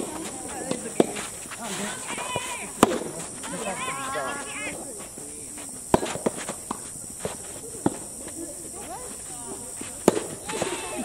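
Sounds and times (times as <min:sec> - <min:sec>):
rackets striking tennis ball: 0:00.0 - 0:04.1, 0:05.8 - 0:08.4, 0:09.8 - 0:11.0
tennis ball bouncing: 0:00.0 - 0:04.1, 0:05.9 - 0:08.1, 0:10.0 - 0:10.8.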